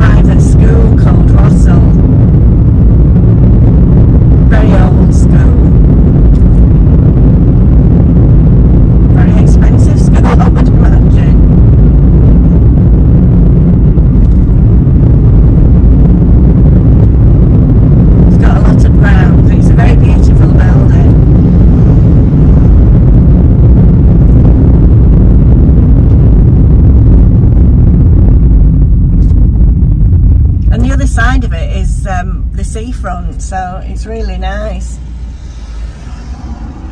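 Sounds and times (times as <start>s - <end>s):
car road and engine rumble: 0.0s - 36.9s
indistinct voice: 4.4s - 5.8s, 9.2s - 11.5s.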